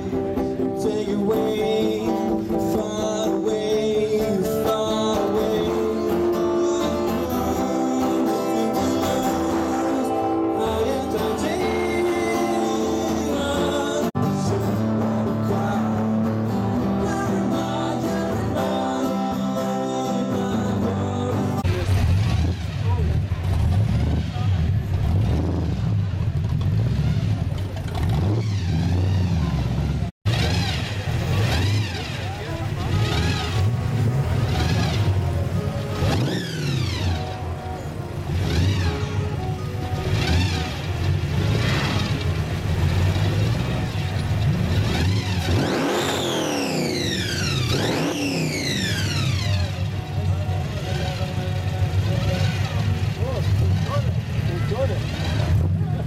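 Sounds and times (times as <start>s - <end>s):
car engine revving: 20.4s - 56.0s.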